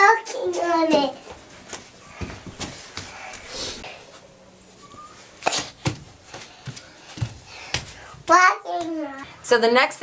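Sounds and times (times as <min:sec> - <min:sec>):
bare feet slapping on vinyl floor: 0:00.9 - 0:03.5, 0:05.4 - 0:09.1.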